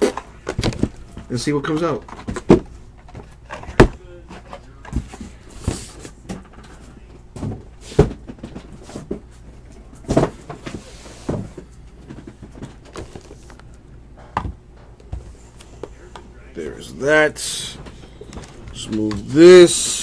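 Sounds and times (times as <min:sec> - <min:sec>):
cardboard boxes knocking on table: 0:10.0 - 0:13.2.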